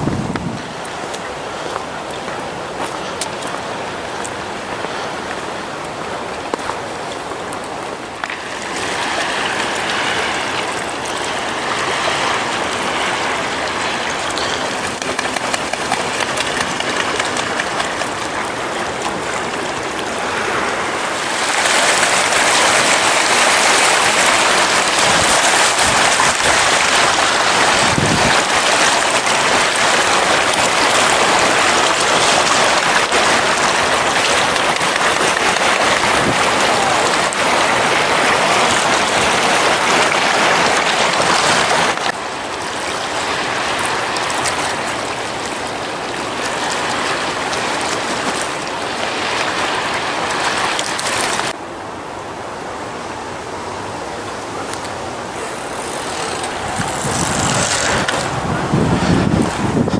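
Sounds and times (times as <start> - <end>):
small waves washing on rocks: 0.0 - 51.6, 54.6 - 59.9.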